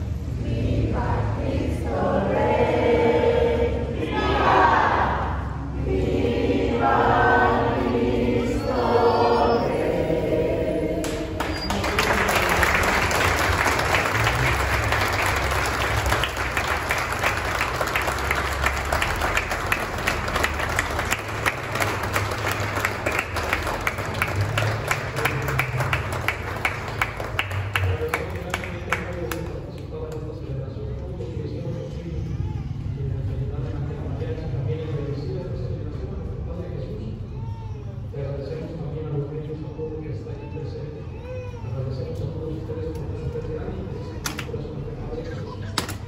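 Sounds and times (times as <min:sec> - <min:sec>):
congregation singing in echoing church: 0:00.0 - 0:29.2
applause: 0:11.0 - 0:30.2.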